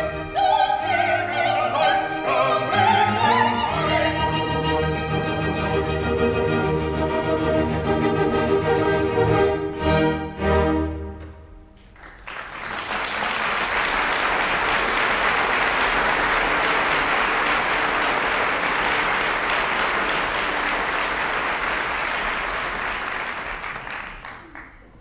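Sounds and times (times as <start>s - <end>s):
audience applauding: 11.8s - 25.0s.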